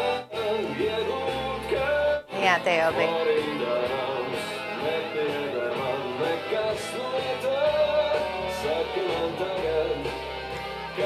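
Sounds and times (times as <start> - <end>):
pop song with male singer: 0.0 - 11.0.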